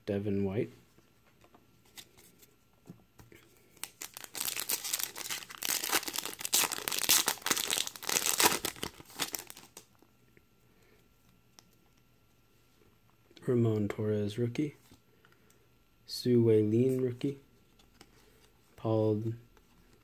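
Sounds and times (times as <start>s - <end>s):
foil wrapper crinkling and tearing: 3.8s - 9.8s.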